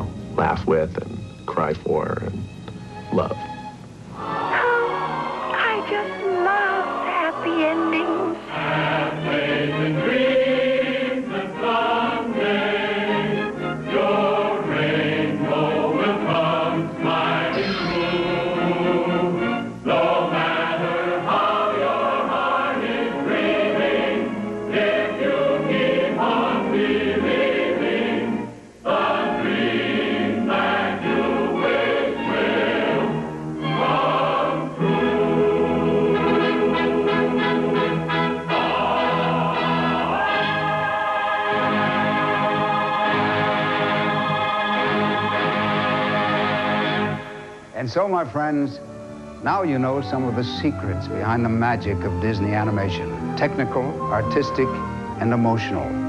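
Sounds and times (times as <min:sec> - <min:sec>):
choir singing: 0:04.2 - 0:47.6
orchestra playing: 0:17.2 - 0:20.1, 0:32.2 - 0:40.6, 0:48.1 - 0:56.0.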